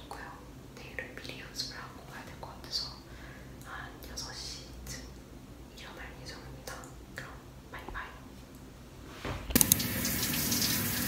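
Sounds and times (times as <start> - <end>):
woman whispering: 0.0 - 8.3.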